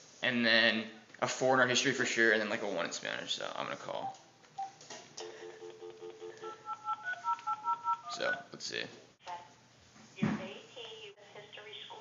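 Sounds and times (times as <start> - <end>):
telephone dial tone: 5.5 - 8.1
touch-tone key beeps: 6.2 - 8.4.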